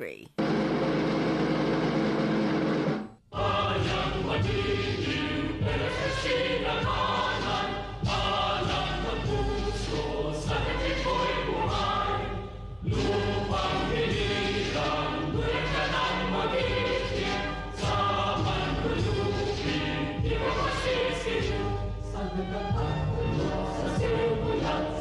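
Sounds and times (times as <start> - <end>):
choir singing: 3.3 - 25.0.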